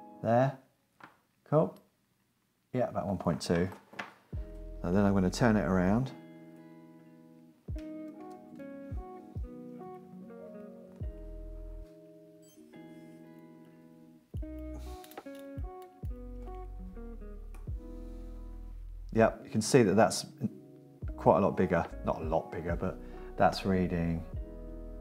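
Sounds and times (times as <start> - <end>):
guitar plucked notes: 4.4 - 25.0.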